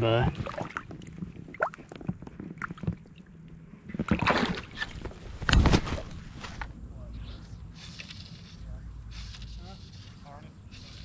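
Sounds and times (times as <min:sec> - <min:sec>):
water splashing and sloshing: 0:00.0 - 0:06.7.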